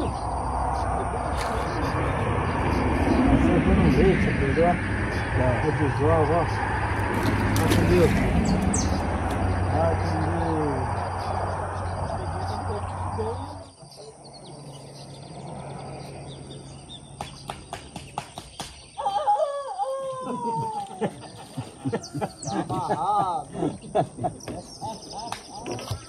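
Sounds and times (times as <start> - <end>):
steady rushing noise: 0.0 - 13.6
low hum: 0.0 - 18.0
rooster crowing: 19.0 - 20.8.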